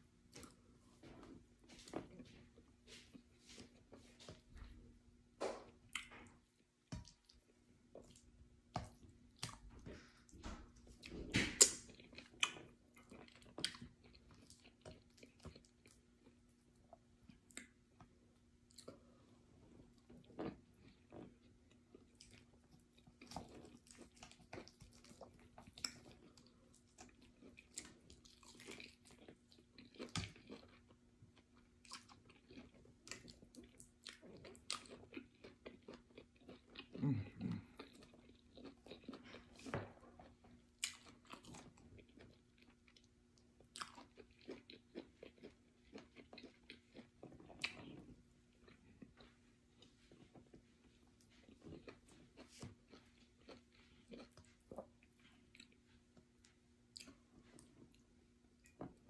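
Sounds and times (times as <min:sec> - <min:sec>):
chewing: 0:05.9 - 0:17.8, 0:19.8 - 0:59.0.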